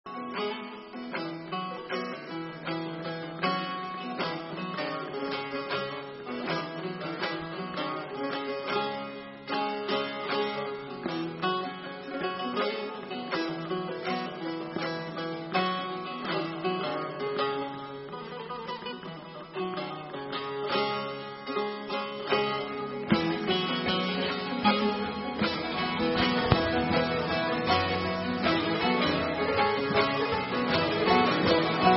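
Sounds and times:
plucked long-necked lutes ensemble: 0:00.1 - 0:31.9.

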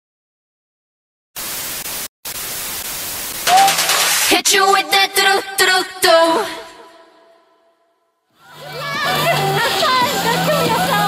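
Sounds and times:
television static hiss: 0:01.4 - 0:04.6.

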